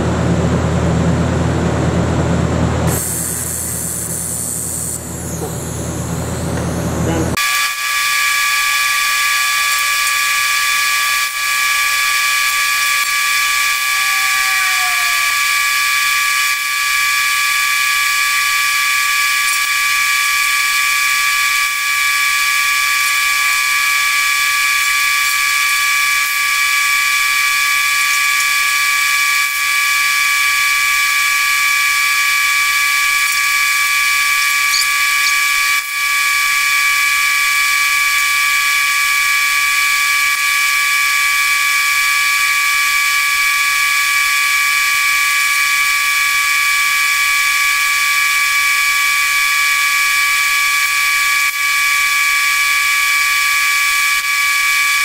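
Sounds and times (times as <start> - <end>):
high-pitched machine whine: 0.0 - 55.0.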